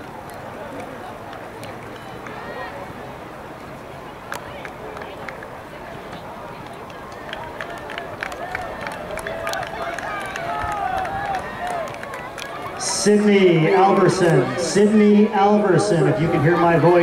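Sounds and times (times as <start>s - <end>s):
crowd murmur: 0.0s - 17.0s
spectators yelling: 7.2s - 17.0s.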